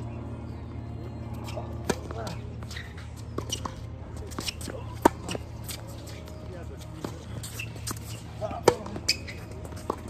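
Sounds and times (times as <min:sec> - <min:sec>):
tennis ball bouncing on hard court: 0:07.0 - 0:10.0
tennis ball struck with rackets: 0:07.0 - 0:10.0.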